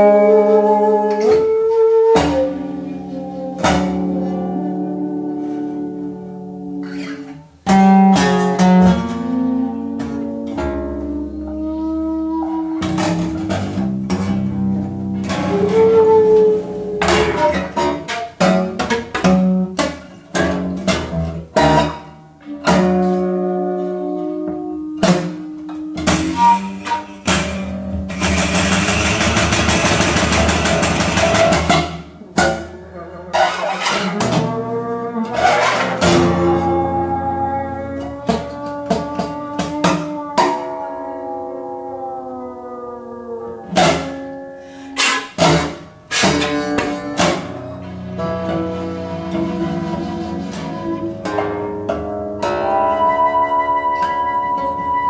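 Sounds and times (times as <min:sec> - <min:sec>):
plucked acoustic guitar: 0:01.1 - 0:41.8, 0:42.7 - 0:55.0
shakuhachi sliding held tones: 0:52.5 - 0:55.0.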